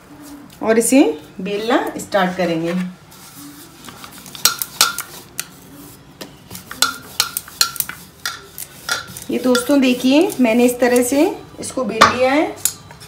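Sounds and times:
rolling pin rubbing dough: 0:01.5 - 0:11.2.

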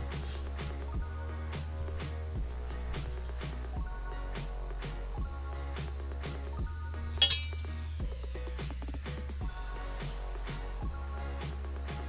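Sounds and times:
background music with steady beat: 0:00.0 - 0:12.0
scissors clinking on metal case: 0:07.2 - 0:07.7.

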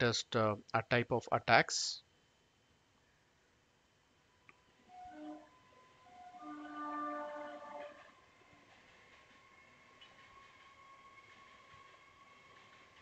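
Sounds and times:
horn sounding a chord: 0:04.9 - 0:08.0.

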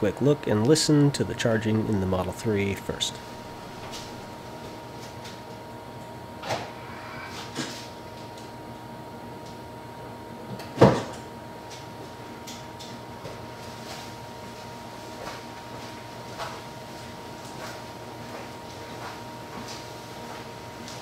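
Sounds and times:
faint electric car whine and hum: 0:00.0 - 0:12.4.

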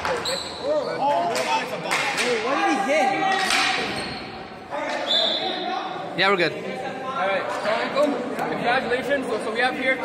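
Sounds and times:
shoe squeak: 0:00.1 - 0:01.2, 0:03.9 - 0:04.4.

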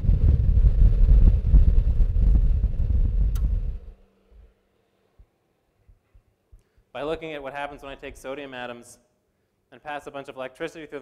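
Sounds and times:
loud irregular low rumble: 0:00.0 - 0:04.7.

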